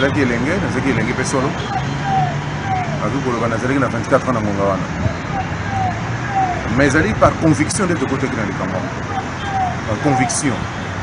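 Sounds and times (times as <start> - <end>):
man talking: 0.0 - 1.7, 2.9 - 5.0, 6.6 - 9.2, 9.8 - 10.8
vehicle engine hum: 0.0 - 11.0.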